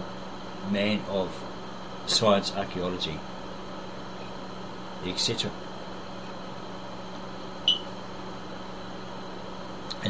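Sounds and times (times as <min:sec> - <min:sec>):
electrical hum and hiss: 0:00.0 - 0:10.0
high-pitched chirp: 0:07.7 - 0:07.9.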